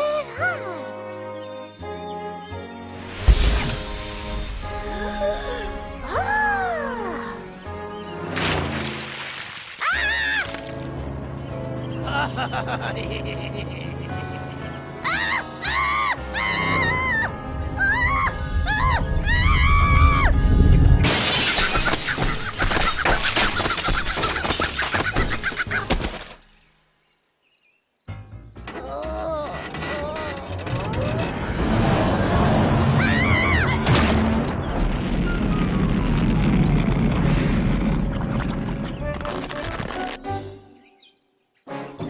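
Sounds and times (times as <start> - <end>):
loud crash: 3.2 - 5.0, 20.0 - 25.0, 31.3 - 39.1
low rumble: 16.8 - 21.1, 30.8 - 39.1
cartoon character screaming: 33.0 - 33.8.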